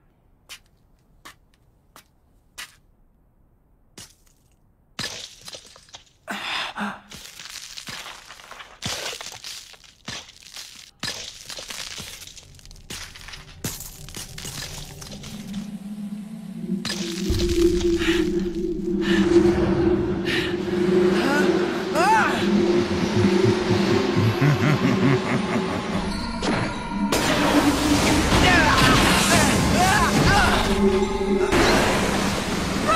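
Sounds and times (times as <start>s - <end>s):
sharp cracks and crumbling: 7.1s - 15.6s
low drone: 12.5s - 32.9s.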